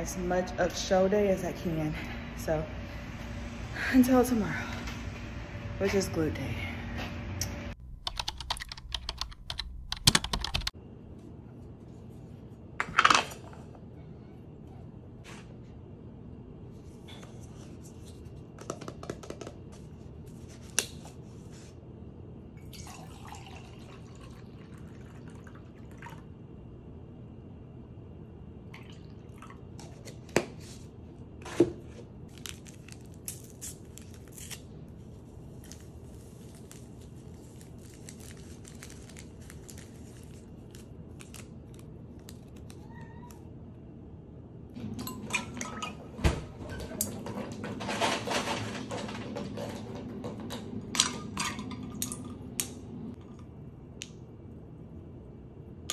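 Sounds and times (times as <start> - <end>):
paper packets tearing: 32.3 - 34.8, 35.6 - 42.8.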